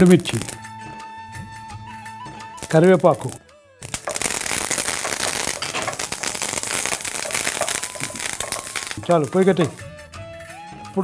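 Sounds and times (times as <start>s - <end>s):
spices sizzling in hot oil: 2.6s - 9.9s.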